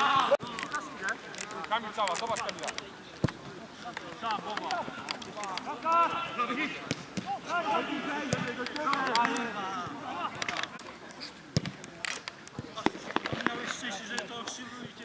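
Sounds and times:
men shouting: 5.7s - 10.4s
ball kicked and bouncing: 11.6s - 11.8s.

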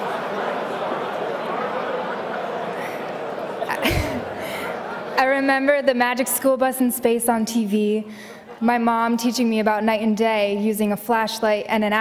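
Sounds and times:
murmur of audience: 0.0s - 5.8s.

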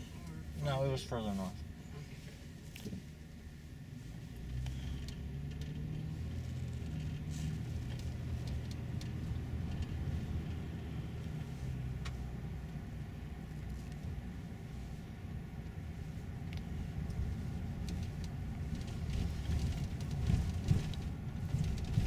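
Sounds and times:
car engine and tyre rumble: 0.0s - 22.0s.

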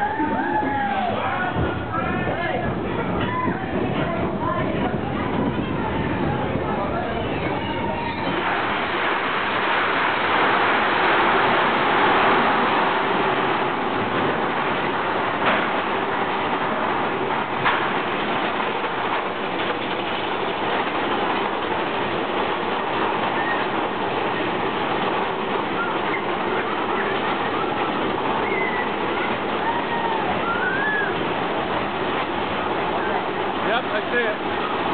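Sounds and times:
roller coaster running on track: 0.0s - 34.9s.

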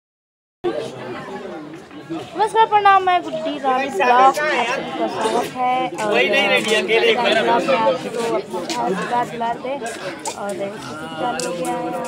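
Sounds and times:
people talking in background: 0.6s - 12.0s.

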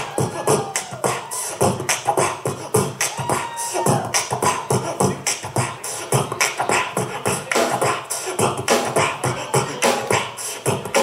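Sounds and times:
bass: 0.0s - 11.0s
drum beat: 0.0s - 11.0s.

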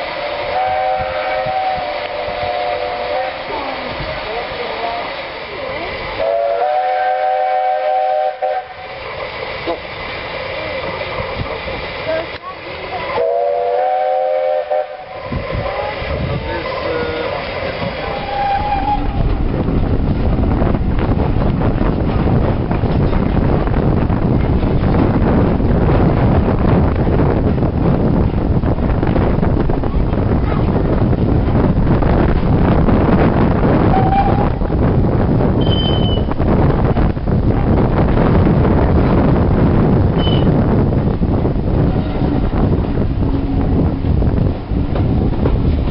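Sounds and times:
rushing noise with low rumble: 0.0s - 45.9s
steam locomotive chime whistle: 0.3s - 3.4s, 6.2s - 8.8s, 13.2s - 15.2s, 18.1s - 19.2s, 33.9s - 34.5s, 35.6s - 36.3s, 40.2s - 40.6s.

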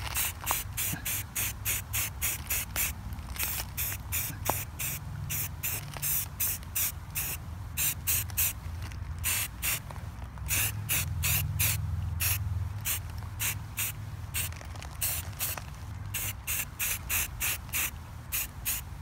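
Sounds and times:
spray paint can hissing bursts: 0.0s - 8.6s, 9.2s - 9.9s, 10.5s - 19.0s.

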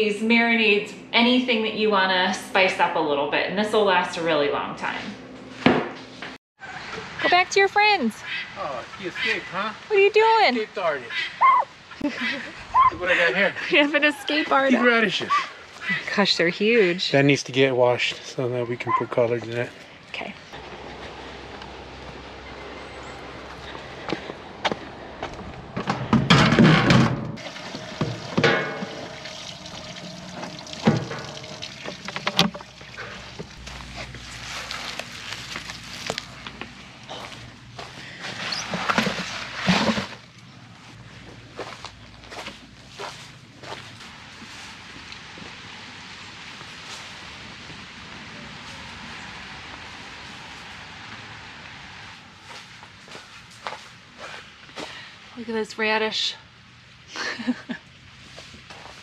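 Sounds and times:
water pouring and splashing: 27.4s - 36.4s
knocks and clatter of handling: 30.5s - 33.6s.

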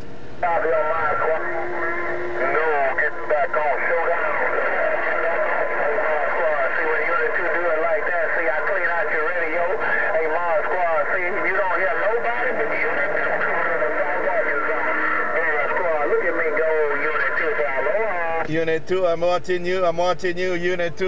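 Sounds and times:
garbled voice over radio speaker: 0.4s - 21.0s.

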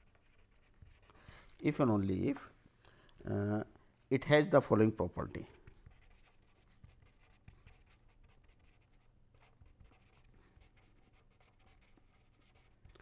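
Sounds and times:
pen scratching on paper: 0.0s - 1.1s, 5.5s - 13.0s.

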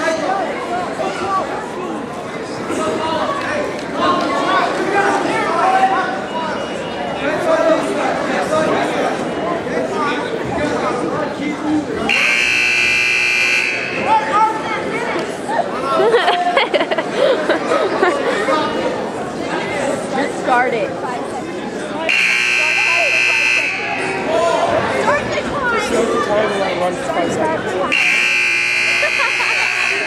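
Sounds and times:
crowd chatter: 0.0s - 30.0s
scoreboard buzzer: 12.1s - 14.2s, 22.1s - 24.1s, 27.9s - 30.0s.

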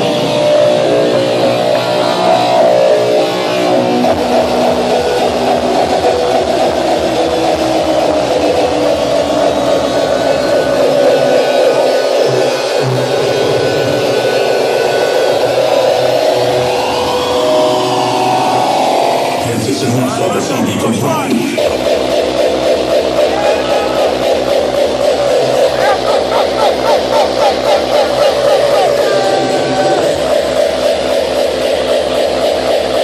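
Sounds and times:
rising sweep: 0.0s - 19.6s, 21.5s - 33.0s
electronic dance music: 0.0s - 33.0s.

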